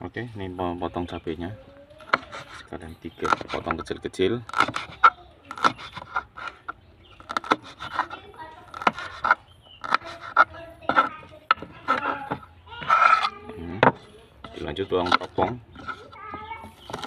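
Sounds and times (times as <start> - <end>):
knife chopping on wooden board: 3.2 - 3.9, 4.5 - 6.6, 7.2 - 16.0.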